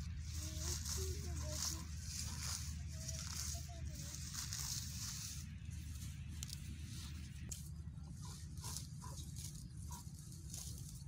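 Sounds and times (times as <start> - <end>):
plants rustling and tearing: 0.0 - 11.0
steady low rumble: 0.0 - 11.0.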